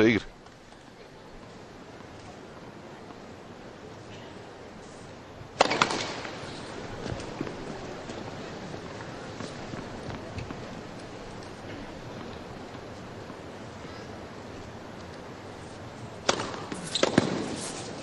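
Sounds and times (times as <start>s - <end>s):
arena background noise: 0.0s - 18.0s
loud sharp cracks: 5.6s - 6.6s, 16.2s - 17.6s.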